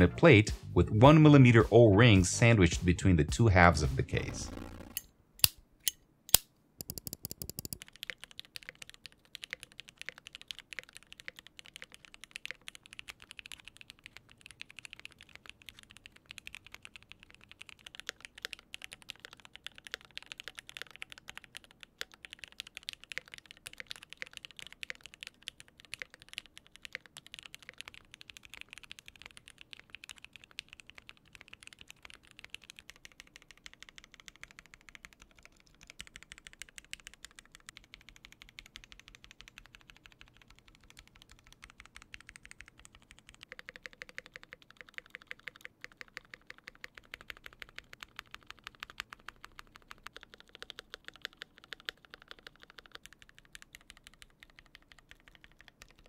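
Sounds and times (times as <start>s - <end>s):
mechanical keyboard typing: 6.8s - 56.0s.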